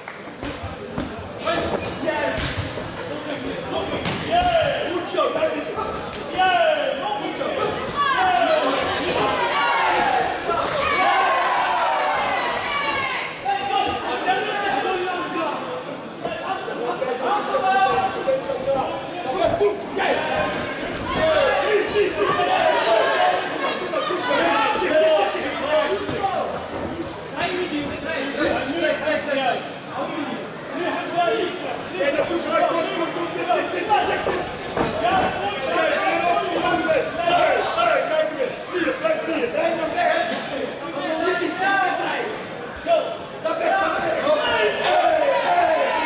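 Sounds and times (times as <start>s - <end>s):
people talking and calling out: 0.0s - 46.0s
people shouting: 21.0s - 26.4s.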